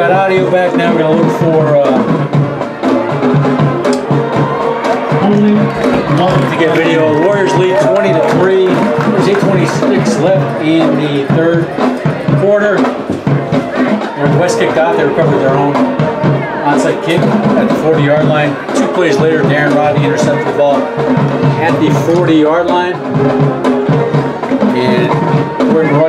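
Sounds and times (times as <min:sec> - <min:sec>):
band playing: 0:00.0 - 0:26.0
crowd voices: 0:00.0 - 0:26.0
drum and percussion hits: 0:00.0 - 0:26.0.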